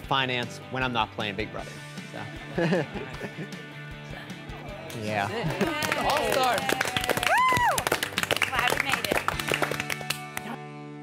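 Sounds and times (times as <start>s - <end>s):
group clapping: 4.9s - 10.6s.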